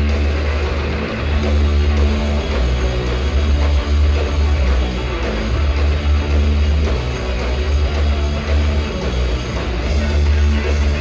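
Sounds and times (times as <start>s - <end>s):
electric guitar: 0.0s - 11.0s
heavy bass: 0.0s - 11.0s.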